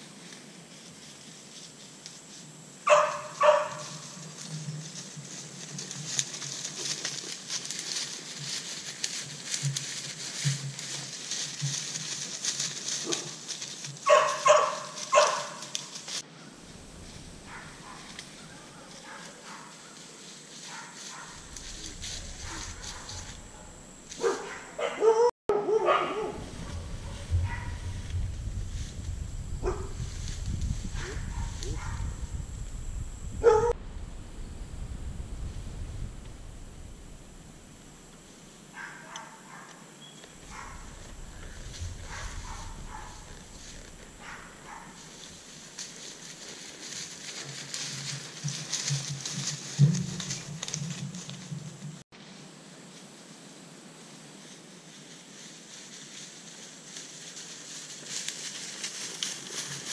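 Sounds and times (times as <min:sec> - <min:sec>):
wind rumble on microphone: 0:16.6 - 0:18.6, 0:21.3 - 0:24.5, 0:26.1 - 0:38.3, 0:40.3 - 0:45.6.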